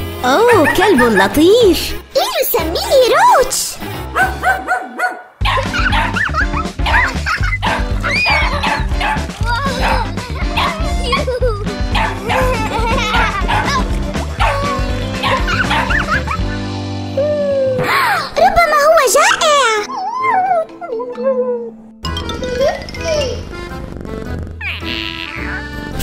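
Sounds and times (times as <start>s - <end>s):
upbeat background music: 0.0s - 26.0s
puppy barking and yipping: 0.4s - 1.4s, 4.2s - 10.9s, 12.0s - 13.8s, 14.4s - 16.4s.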